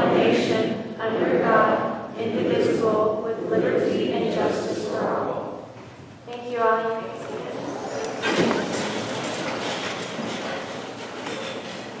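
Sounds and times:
audience rustling and shuffling: 2.2s - 12.0s.

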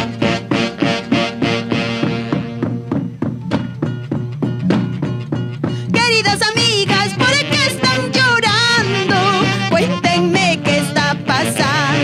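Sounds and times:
saxophone section playing: 0.0s - 3.1s, 6.7s - 12.0s
steady bass drum beat: 0.0s - 11.9s.

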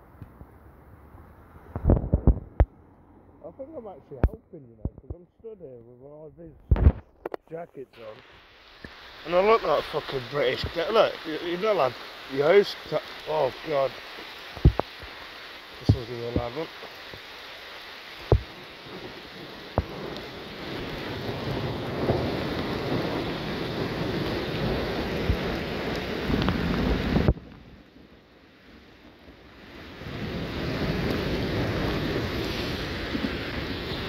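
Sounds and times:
wind rumbling on microphone: 0.0s - 2.9s, 4.1s - 5.3s, 6.4s - 7.4s, 8.0s - 15.2s, 18.2s - 34.0s
heavy rain pouring on road: 8.0s - 34.0s.

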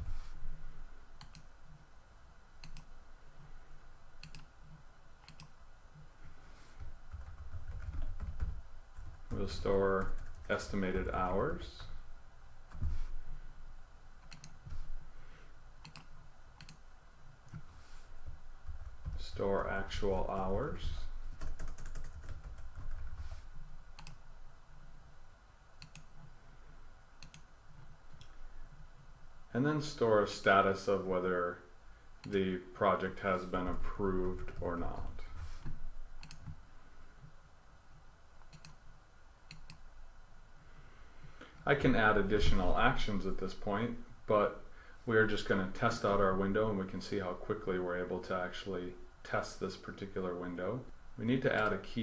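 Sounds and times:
low room hum: 0.0s - 52.0s
mouse clicks: 4.2s - 4.5s, 5.2s - 5.5s, 15.8s - 16.8s, 25.8s - 26.1s, 27.2s - 27.5s, 38.4s - 38.8s.

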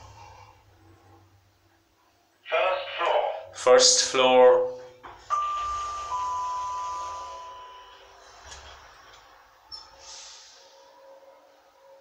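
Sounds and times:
lift arrival chime: 5.2s - 10.0s.

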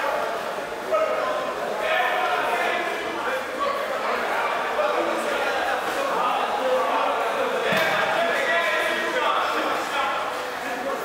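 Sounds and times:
men shouting in echoing hall: 0.0s - 11.0s.

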